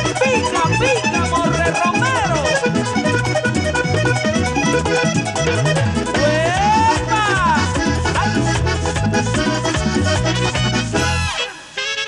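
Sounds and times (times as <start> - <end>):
repeating bass line: 0.0 - 11.7
button accordion playing lead: 0.0 - 12.0
percussion: 0.0 - 12.0.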